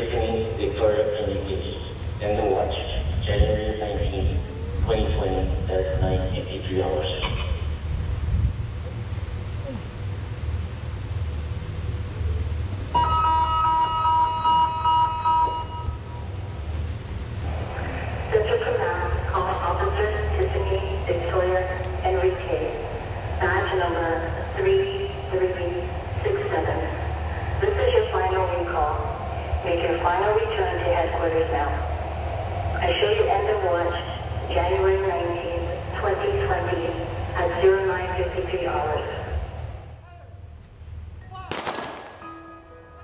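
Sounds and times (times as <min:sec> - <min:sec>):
dispatcher speaking over radio: 0:00.0 - 0:07.6, 0:18.3 - 0:31.8, 0:32.8 - 0:39.4
low rumble: 0:15.8 - 0:42.4.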